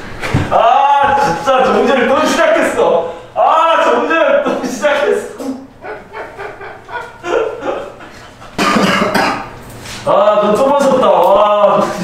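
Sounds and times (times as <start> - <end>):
man laughing hard: 5.8 - 9.0.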